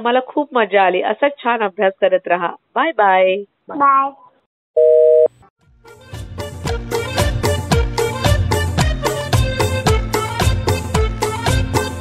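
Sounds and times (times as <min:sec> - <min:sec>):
two-note telephone beep: 0:04.8 - 0:05.3
music: 0:05.6 - 0:12.0.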